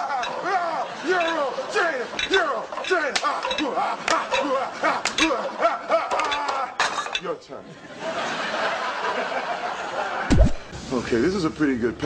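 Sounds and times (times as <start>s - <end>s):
metallic clinks of gym weights: 2.1s - 5.4s.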